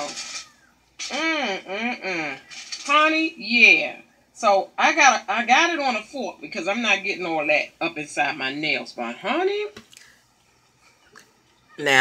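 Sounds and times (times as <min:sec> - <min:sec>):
woman speaking: 0:01.1 - 0:09.8.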